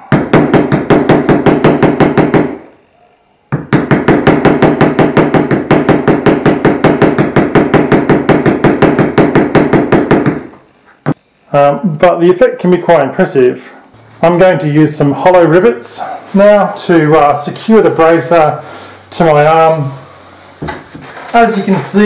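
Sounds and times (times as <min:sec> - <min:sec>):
mallet striking metal stamping tool: 0:00.0 - 0:02.6, 0:03.6 - 0:10.4.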